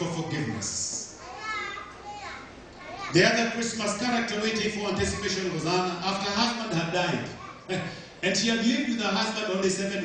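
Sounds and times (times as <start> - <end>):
young child's vocal sounds: 0.5 - 3.2, 7.3 - 8.0.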